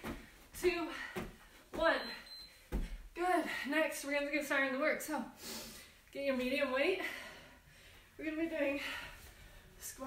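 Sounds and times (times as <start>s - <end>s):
woman speaking: 1.8s - 2.3s, 8.2s - 9.0s
feet thudding on carpet: 2.7s - 3.0s.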